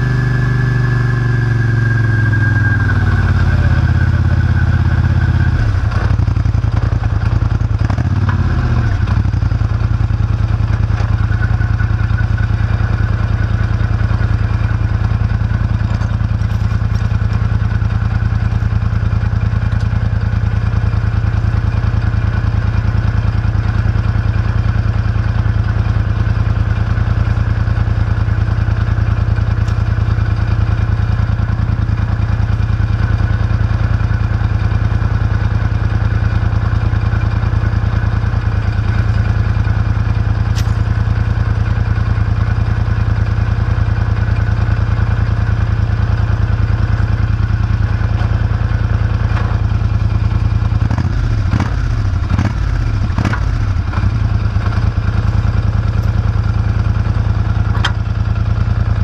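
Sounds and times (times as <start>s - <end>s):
atv engine idling: 0.0s - 59.0s.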